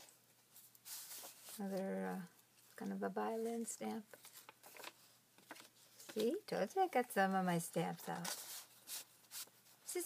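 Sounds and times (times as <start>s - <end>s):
paper pages rustling: 0.0s - 6.4s, 7.9s - 10.0s.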